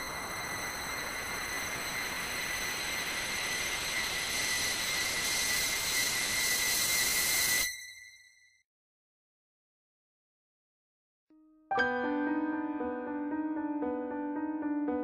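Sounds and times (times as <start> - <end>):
hissing rush with high whistle: 0.0 - 8.4.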